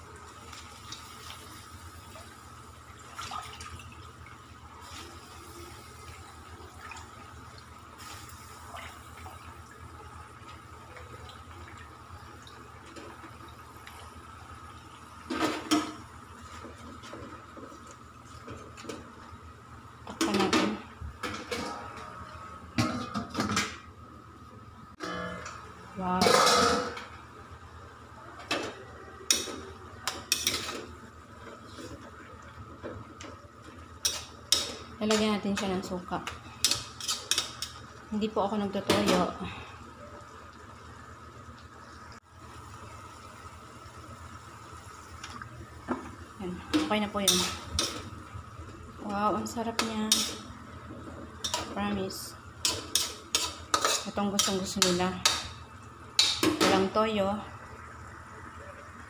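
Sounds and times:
spatula scraping a pan: 52.6s - 55.0s.

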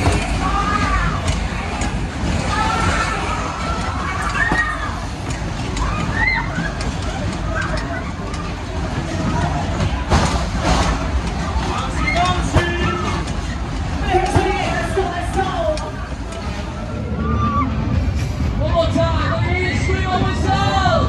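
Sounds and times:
people shouting: 2.4s - 5.1s, 5.8s - 8.4s, 17.0s - 17.9s.

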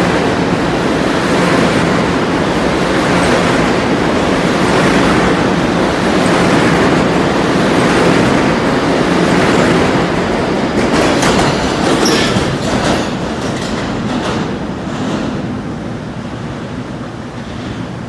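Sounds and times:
train wheels rumbling on rails: 0.0s - 18.0s
clattering over rail joints: 9.8s - 15.4s
high wheel squeal: 12.0s - 12.4s.

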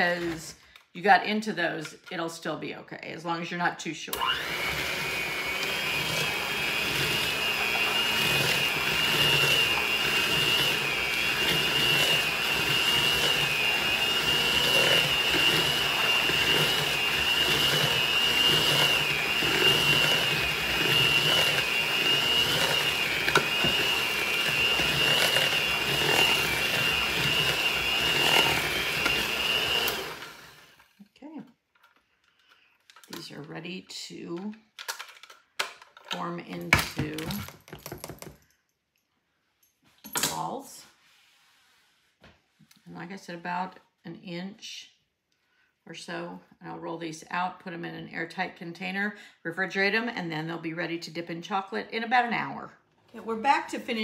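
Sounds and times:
electric hand mixer whining: 4.1s - 31.0s.

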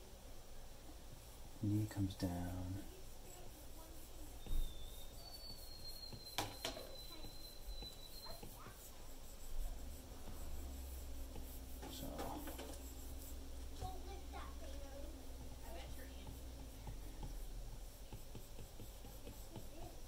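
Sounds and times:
thin high whine: 3.3s - 17.2s
stylus tapping on tablet screen: 6.0s - 8.7s, 15.4s - 19.9s.

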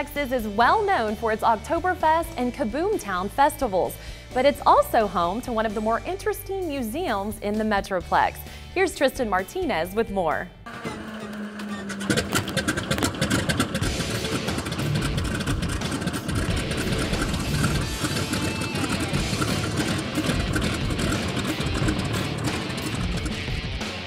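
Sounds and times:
background music: 0.0s - 24.0s
biplane engine running: 10.7s - 24.0s.

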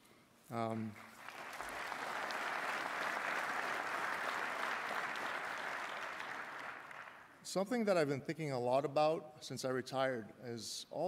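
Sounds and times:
audience applauding: 0.9s - 7.3s.

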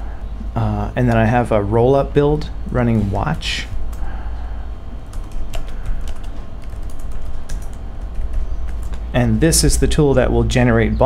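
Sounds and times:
low hum: 0.0s - 11.0s
keyboard typing: 5.1s - 9.1s.

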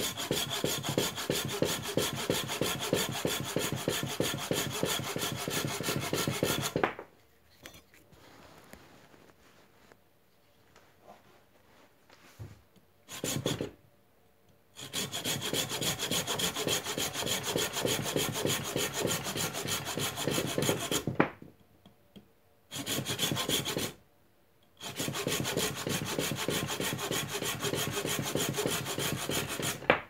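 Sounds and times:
saw cutting wooden branch: 0.0s - 6.9s, 13.1s - 13.7s, 14.8s - 21.2s, 22.8s - 24.0s, 24.8s - 30.0s.

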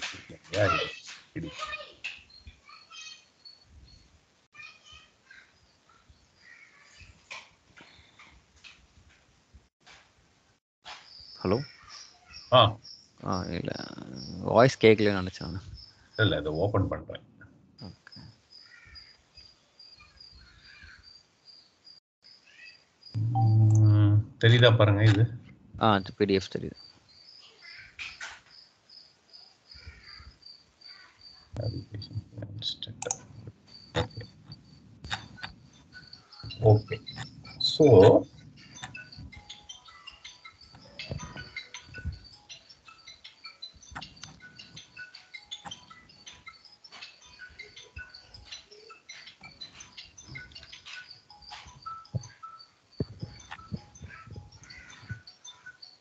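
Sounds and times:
faint high pulsing tone: 23.2s - 24.8s, 31.6s - 39.5s.

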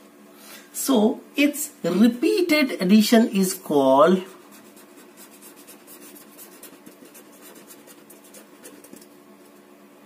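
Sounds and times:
marker pen writing on paper: 4.3s - 9.1s.

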